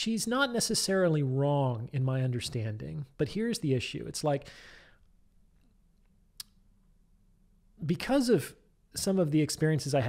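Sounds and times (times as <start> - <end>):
man speaking: 0.0 - 4.5, 7.8 - 10.0.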